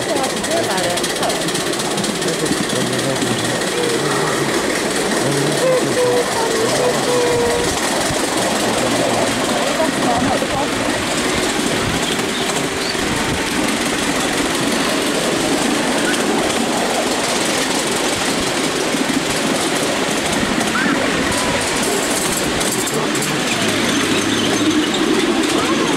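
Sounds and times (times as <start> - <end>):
miniature train running on track: 0.0 - 25.9.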